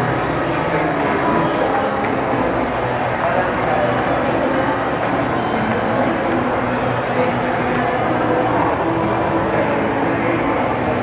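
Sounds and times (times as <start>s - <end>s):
crowd murmur in echoing hall: 0.0s - 11.0s.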